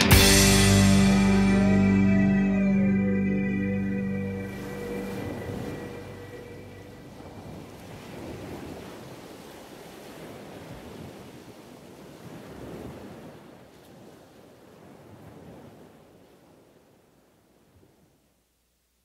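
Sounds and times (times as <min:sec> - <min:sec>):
music held notes: 0:00.0 - 0:07.2
sea waves washing in: 0:00.0 - 0:17.0.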